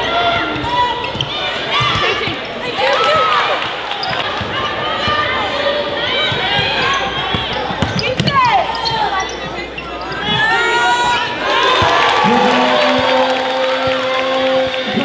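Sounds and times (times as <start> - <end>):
sneakers squeaking: 0.0 - 12.0
chatter and shouts: 0.0 - 15.0
basketball bouncing on court: 0.5 - 2.4, 6.2 - 9.0.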